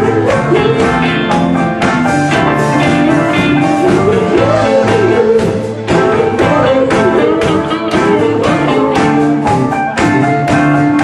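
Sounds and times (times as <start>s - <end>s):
live band with guitars: 0.0s - 11.0s.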